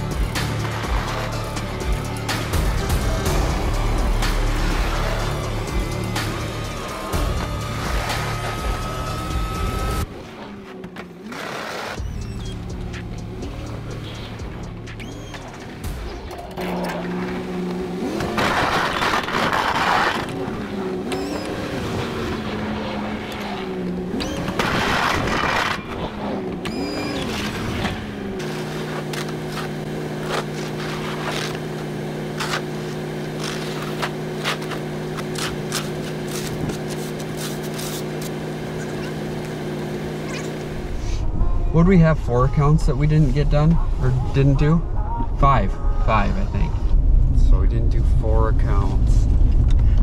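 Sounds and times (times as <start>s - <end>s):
snow pushed by plow blade: 0.0s - 41.6s
pickup engine revving: 16.6s - 41.2s.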